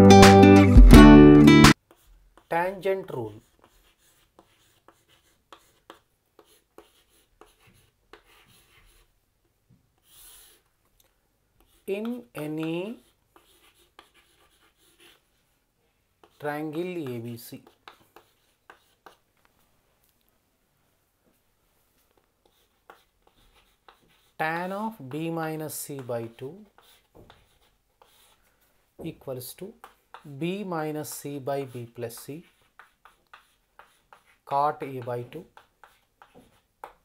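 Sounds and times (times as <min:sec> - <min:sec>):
chalk writing on chalkboard: 0:01.7 - 0:09.1, 0:10.0 - 0:10.7, 0:11.6 - 0:15.6, 0:16.2 - 0:19.3, 0:22.0 - 0:37.0.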